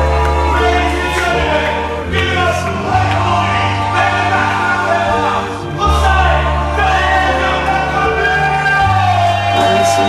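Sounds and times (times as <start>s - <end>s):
choir-like sung vocals: 0.0s - 10.0s
sustained bass notes: 0.0s - 10.0s.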